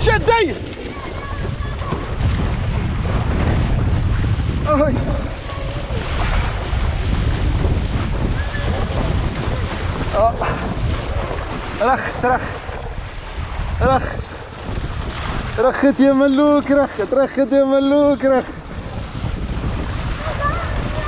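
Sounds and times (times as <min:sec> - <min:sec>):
water rushing and splashing: 0:00.0 - 0:21.0
wind buffeting microphone: 0:00.0 - 0:21.0.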